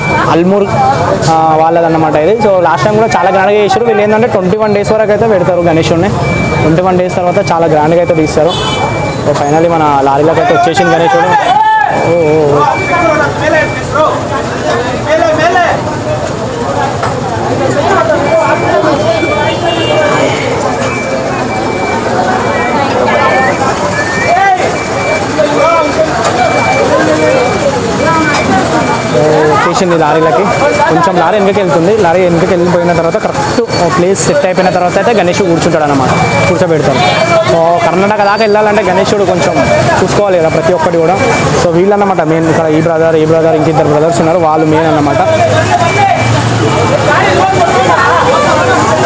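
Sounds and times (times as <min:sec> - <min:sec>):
engines running: 0:00.0 - 0:49.0
men talking and calling out: 0:00.0 - 0:49.0
men's voices: 0:00.0 - 0:49.0
vehicle warning beeper: 0:00.0 - 0:49.0
crane engine running: 0:05.1 - 0:06.7, 0:12.0 - 0:34.3.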